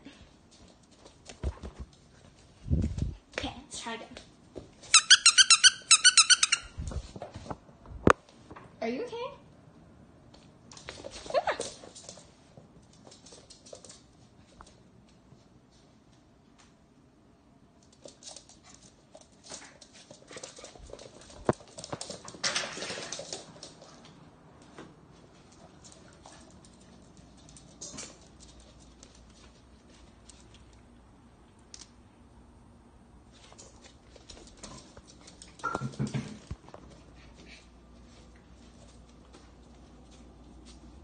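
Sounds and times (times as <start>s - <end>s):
puppy claws scrabbling on floor: 0.5s - 3.4s, 10.3s - 15.2s, 17.8s - 32.0s, 33.3s - 41.0s
squeaky toy squeaking: 4.9s - 6.8s.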